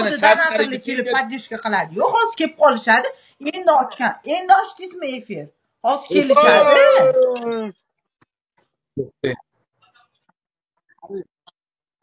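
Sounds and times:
dog-like howl: 6.4s - 7.6s.

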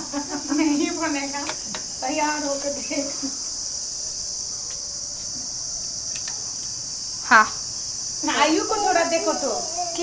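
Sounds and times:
insect chorus: 0.0s - 10.0s.

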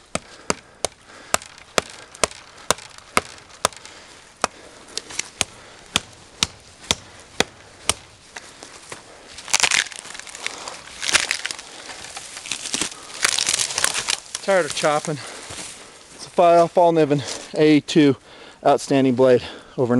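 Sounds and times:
loud crunching noise: 0.0s - 15.1s
knife chopping into wood: 0.1s - 8.1s.

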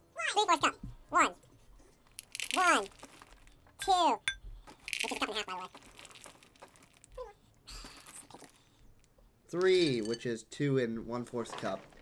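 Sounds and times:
cereal rattling into plastic cup: 2.1s - 3.6s, 4.8s - 7.1s
man talking: 9.5s - 11.9s.

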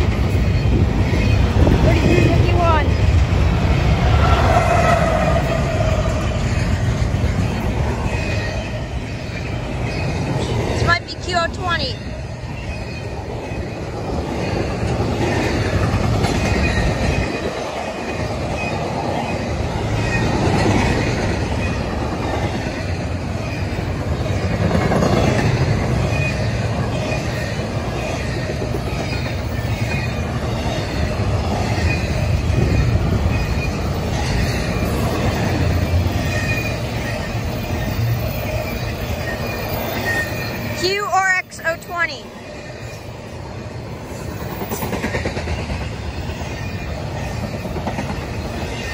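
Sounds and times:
train wheels rumbling on rail: 0.0s - 48.9s.

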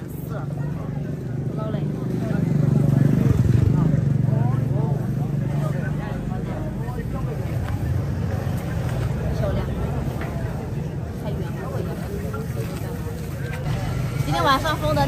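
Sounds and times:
people talking: 0.0s - 15.0s.

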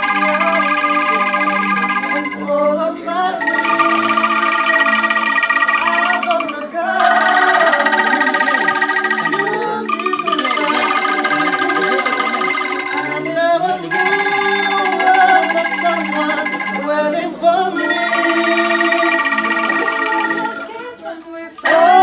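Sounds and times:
angklung ensemble chords: 0.0s - 21.0s
electronic keyboard playing: 0.0s - 21.0s, 21.6s - 22.0s.

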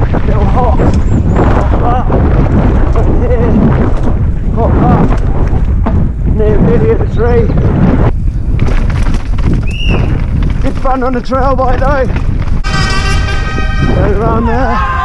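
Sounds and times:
tyres rumbling and rattling: 0.0s - 15.0s
wind buffeting microphone: 0.0s - 15.0s.

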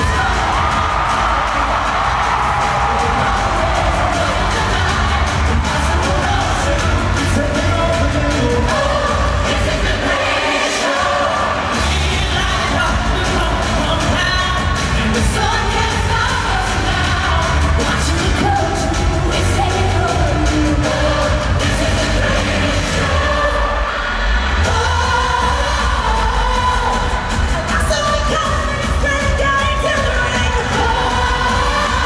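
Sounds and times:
amplified band with heavy beat: 0.0s - 10.2s, 11.0s - 23.5s, 24.5s - 32.0s
people singing show tune: 0.0s - 32.0s.

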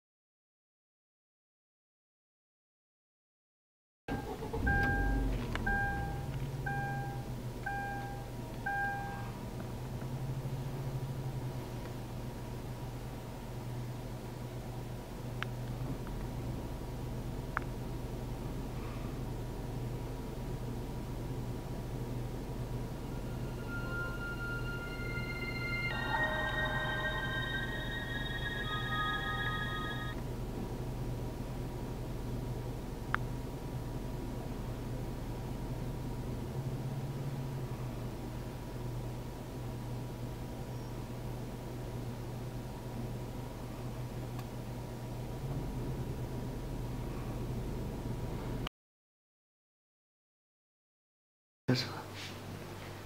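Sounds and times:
car engine starting and idling: 4.1s - 9.2s
electronic warning chime beeping: 4.1s - 9.3s, 22.8s - 30.2s
steady low hum: 4.1s - 48.7s.

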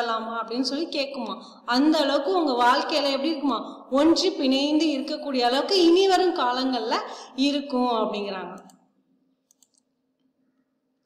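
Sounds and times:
faint computer mouse clicks: 9.5s - 9.9s.

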